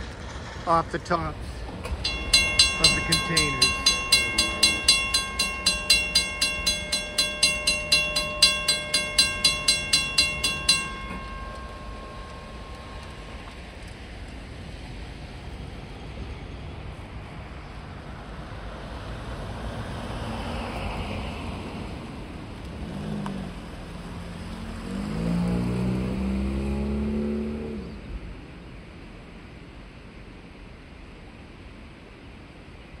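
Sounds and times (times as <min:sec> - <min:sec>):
road vehicles passing: 0:00.0 - 0:29.4
crossing bell ringing: 0:01.8 - 0:14.8.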